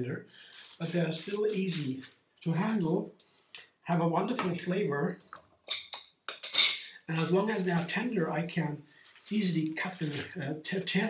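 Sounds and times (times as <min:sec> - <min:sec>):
lettuce leaves rustling and tearing: 0:09.0 - 0:10.4.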